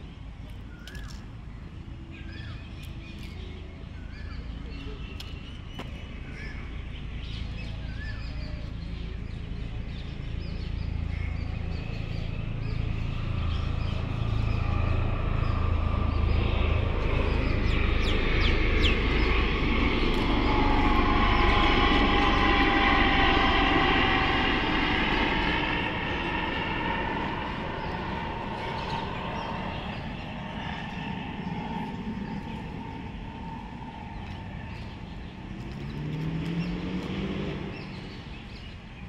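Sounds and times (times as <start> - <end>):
aircraft passing overhead: 0.0 - 39.0.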